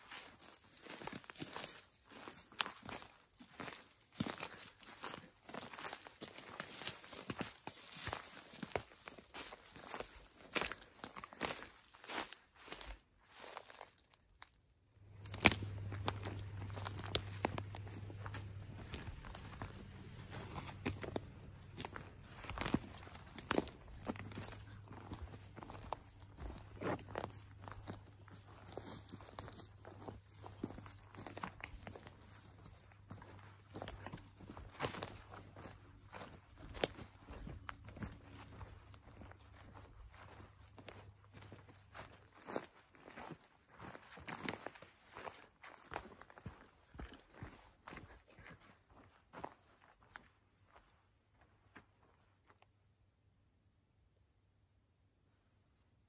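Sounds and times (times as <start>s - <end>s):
footsteps crunching through undergrowth: 0.0s - 52.3s.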